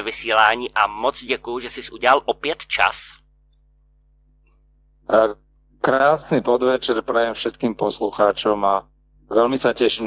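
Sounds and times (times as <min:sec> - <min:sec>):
man speaking: 0:00.0 - 0:03.2.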